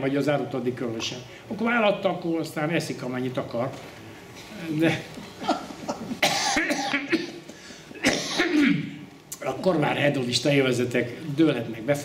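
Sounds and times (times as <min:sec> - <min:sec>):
man coughing while laughing: 0:05.4 - 0:08.9.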